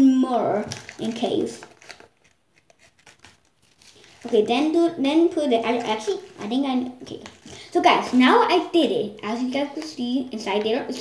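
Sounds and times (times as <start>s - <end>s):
paper packet rustling: 0.5s - 11.0s.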